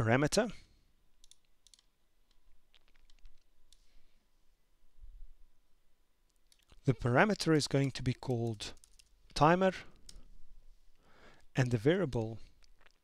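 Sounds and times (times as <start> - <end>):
computer mouse and keyboard clicks: 1.2 - 3.8, 6.3 - 9.1.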